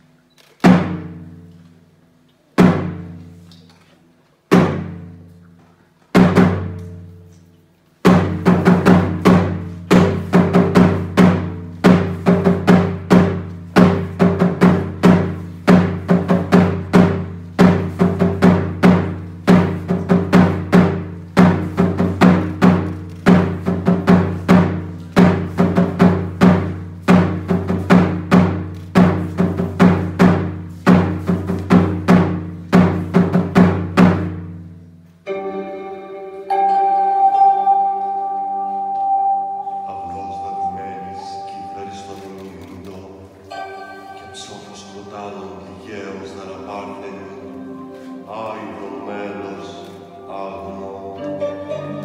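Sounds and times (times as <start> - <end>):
hand drum strikes: 6.1 - 7.1, 8.0 - 34.6
ringing bell-like tones: 35.3 - 42.2, 43.5 - 45.7.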